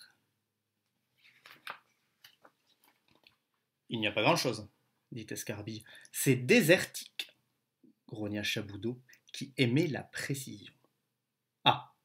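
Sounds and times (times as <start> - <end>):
paper page rustling: 1.1 - 3.4.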